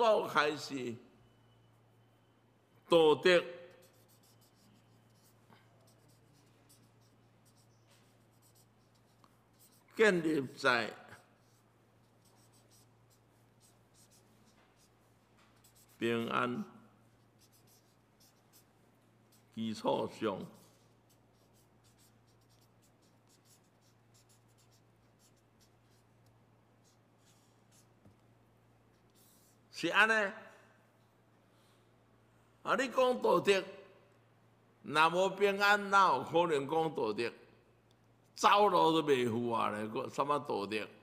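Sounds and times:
faint low hum: 0.0 - 35.5
marker scratching on paper: 3.6 - 28.2, 28.8 - 29.7.

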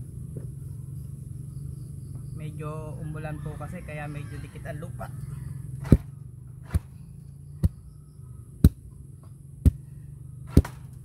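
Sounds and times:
wooden tamper thudding on soil: 10.5 - 11.0.

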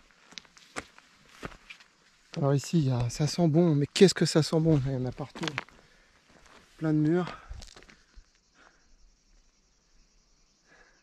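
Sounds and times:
footsteps on gravel: 0.0 - 3.5, 4.5 - 8.0.

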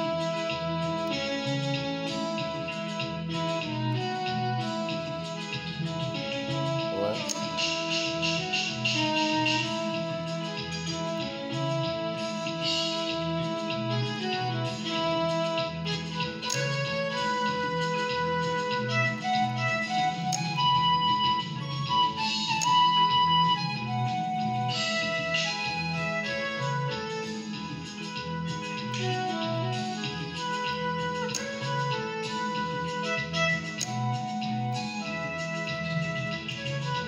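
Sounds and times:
backing beat and bass line: 0.0 - 37.0
electronic keyboard melody: 0.0 - 37.0.

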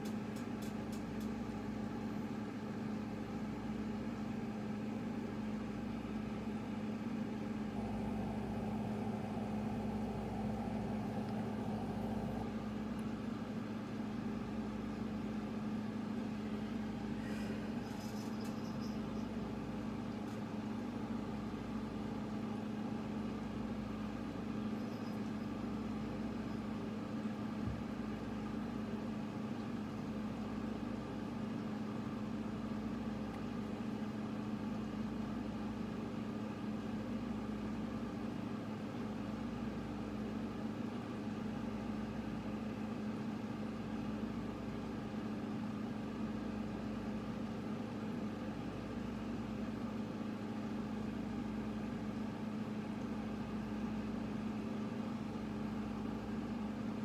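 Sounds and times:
steady low hum: 0.0 - 57.0
deep rumble: 7.6 - 13.2.

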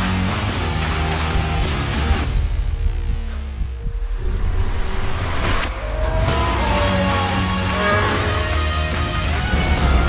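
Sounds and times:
soundtrack music with rising sweep: 0.0 - 10.0
racing car engine revving: 5.4 - 10.0.

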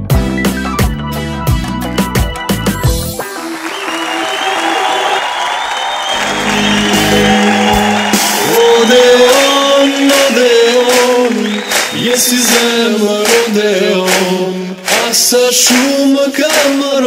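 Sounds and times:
music: 0.0 - 17.0
audience applauding: 3.2 - 17.0
loud held singing: 4.2 - 17.0.

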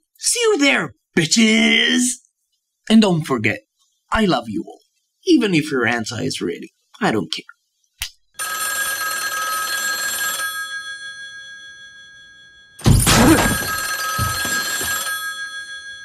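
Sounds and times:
telephone bell ringing: 8.4 - 16.0.

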